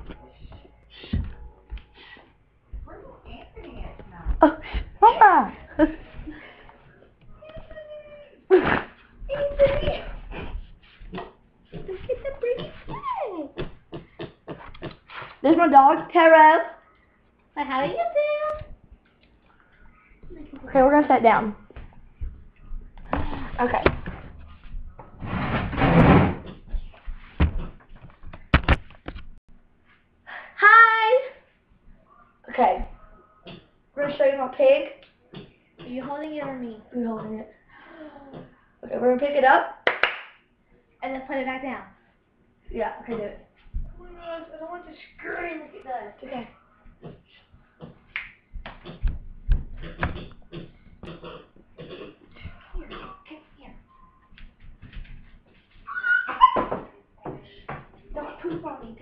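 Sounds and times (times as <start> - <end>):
loud rustling scrape: 25.2 - 26.4
pig crying: 55.9 - 56.7
pig squeaking and whimpering: 55.9 - 56.7.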